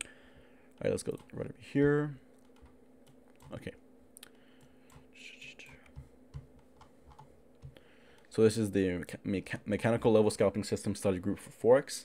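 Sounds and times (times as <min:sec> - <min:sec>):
low electrical hum: 0:00.0 - 0:12.0
keyboard and mouse clicks: 0:04.6 - 0:07.8.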